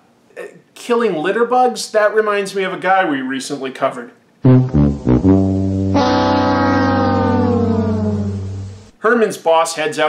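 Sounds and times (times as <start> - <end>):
steady low bass note: 4.4 - 8.9
held electric guitar chord: 4.5 - 8.9.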